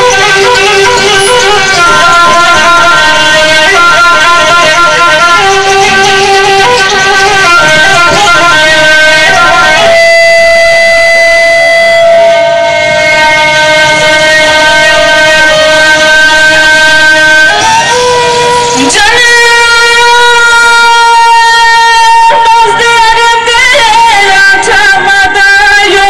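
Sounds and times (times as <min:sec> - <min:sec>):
live folk music through sound system: 0:00.0 - 0:26.0.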